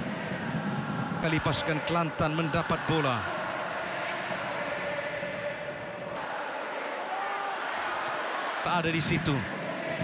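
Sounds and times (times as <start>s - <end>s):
faint crowd chanting: 0.0s - 10.0s
stadium crowd noise: 0.0s - 10.0s.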